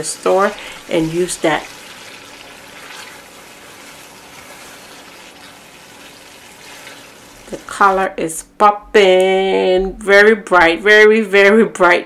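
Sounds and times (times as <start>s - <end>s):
paste frying in oil: 0.0s - 8.2s.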